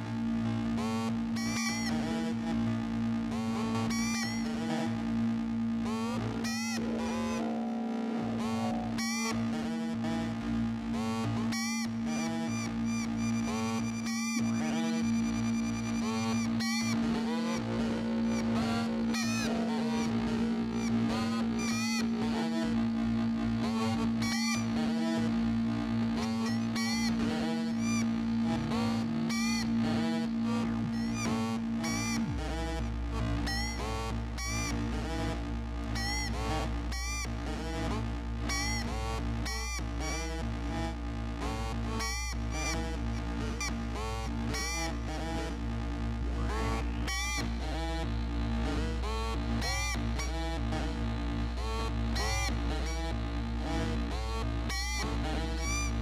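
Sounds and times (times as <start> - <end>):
synthesizer drone note: 6.0 - 10.9, 16.9 - 21.6
glitchy plucked synth notes: 6.2 - 10.4.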